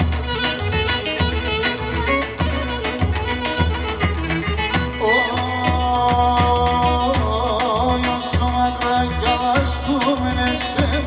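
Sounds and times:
clarinet: 0.0s - 7.1s
drum beat: 0.0s - 11.0s
folk dance music: 0.0s - 11.0s
keyboards: 0.0s - 11.0s.

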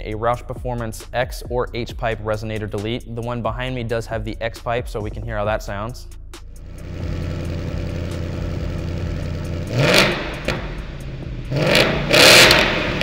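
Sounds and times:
car engine idling and revving: 6.4s - 13.0s.

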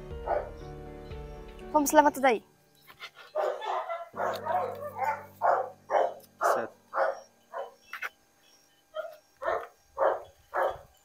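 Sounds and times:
dog barking: 0.2s - 0.6s, 3.4s - 7.8s, 9.0s - 10.9s.

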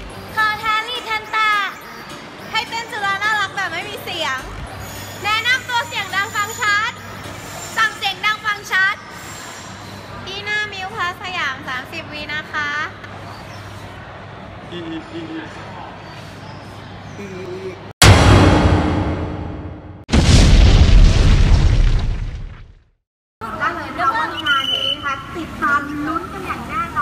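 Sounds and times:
explosion boom with deep rumble: 18.0s - 22.8s.

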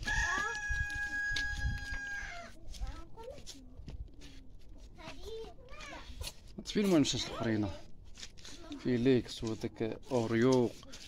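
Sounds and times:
rooster crowing: 0.0s - 2.5s.

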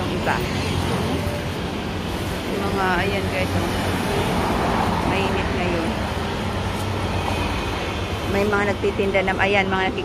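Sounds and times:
cars and scooters passing: 0.0s - 10.0s
faint voices of passers-by: 0.0s - 10.0s.

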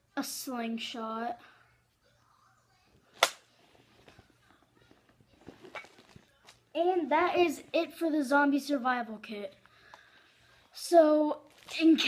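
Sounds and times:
slingshot rubber band snapping: 3.2s - 3.4s.

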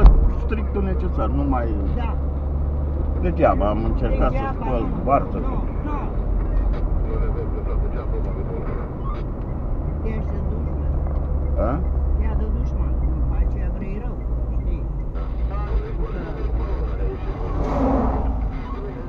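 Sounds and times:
car engine and tyre rumble: 0.0s - 19.0s.

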